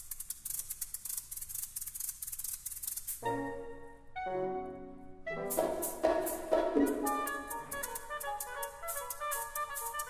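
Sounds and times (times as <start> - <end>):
maracas shaking: 0.0 - 3.3, 5.5 - 10.0.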